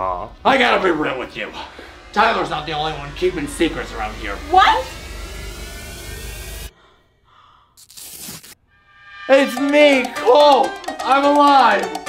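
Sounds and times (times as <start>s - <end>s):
dramatic rushing rumble: 0.0s - 6.8s, 8.8s - 11.3s.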